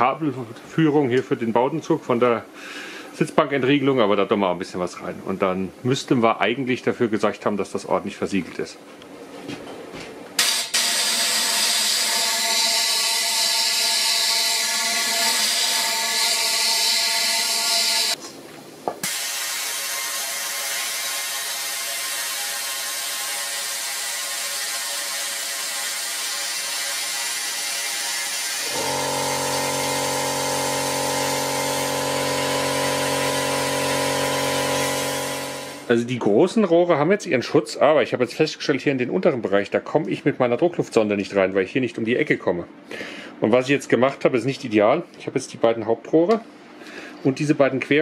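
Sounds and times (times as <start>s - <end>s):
spray gun hissing: 10.4s - 18.2s, 19.0s - 26.9s, 28.6s - 35.9s
steady hum: 28.6s - 48.0s.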